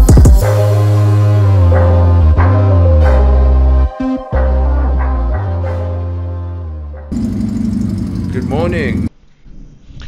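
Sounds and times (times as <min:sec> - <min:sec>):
motorcycle engine running: 0:07.1 - 0:09.1.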